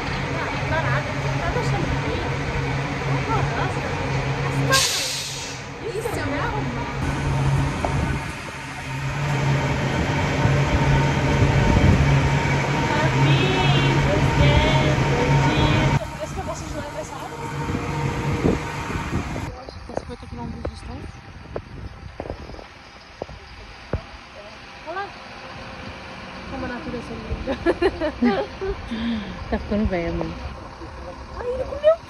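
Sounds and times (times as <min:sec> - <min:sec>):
indistinct voices: 0:00.0 - 0:32.0
low engine hum: 0:00.0 - 0:32.0
sparse outdoor sound: 0:00.0 - 0:32.0
short burst of hissing: 0:04.7 - 0:05.7.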